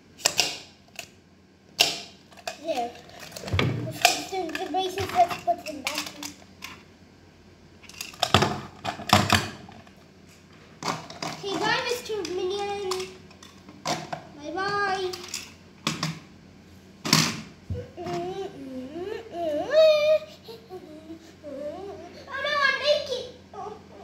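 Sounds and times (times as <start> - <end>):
plastic toy tools clicking: 4.0 - 6.8
child's wordless vocal sounds: 17.8 - 24.0.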